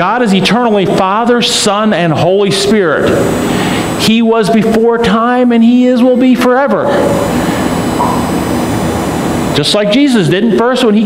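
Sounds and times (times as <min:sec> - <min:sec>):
faint high tones: 0:07.0 - 0:09.5.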